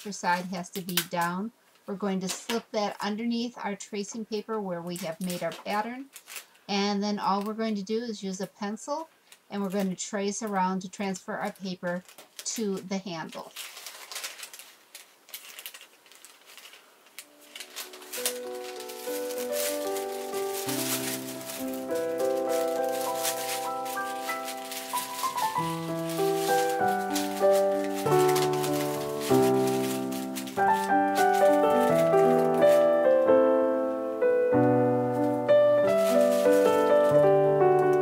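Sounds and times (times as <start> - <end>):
paper crinkling and rustling: 4.9 - 7.6, 11.4 - 33.9, 34.5 - 38.0
piano music: 17.2 - 38.0.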